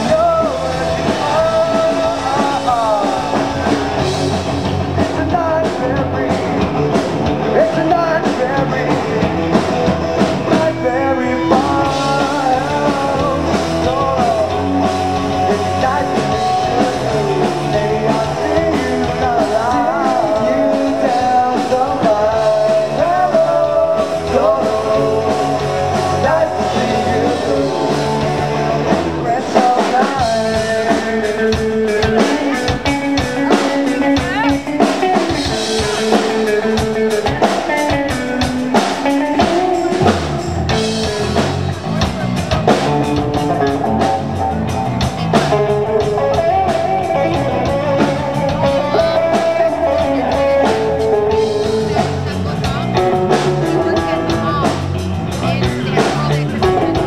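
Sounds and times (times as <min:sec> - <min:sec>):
drum kit: 0:00.0 - 0:57.0
electric guitar: 0:00.0 - 0:57.0.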